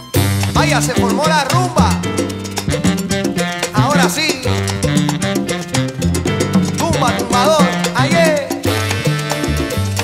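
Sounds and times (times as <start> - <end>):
salsa music: 0.0 - 10.0.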